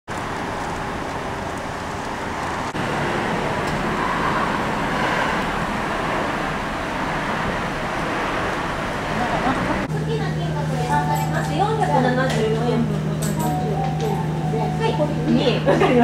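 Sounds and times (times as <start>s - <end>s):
street traffic noise: 0.1s - 16.0s.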